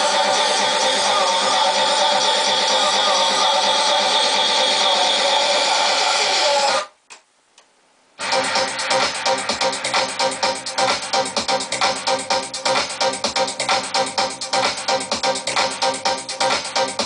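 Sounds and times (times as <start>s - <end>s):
dj mix music: 0.0s - 6.9s, 8.2s - 17.0s.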